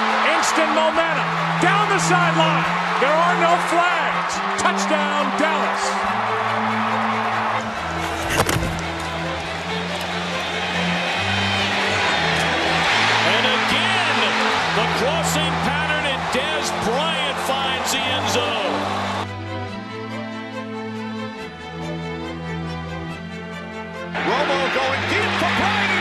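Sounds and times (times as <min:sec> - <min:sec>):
stadium crowd cheering: 0:00.0 - 0:19.4, 0:24.1 - 0:26.0
crowd whistles and whoops: 0:18.4 - 0:19.3.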